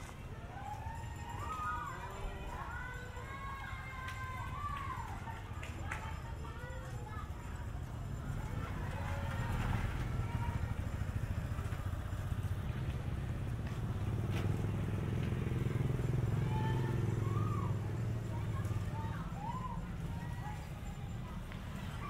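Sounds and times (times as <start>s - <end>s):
faint voices: 0.0s - 22.0s
vehicle engine rumbling: 7.8s - 22.0s.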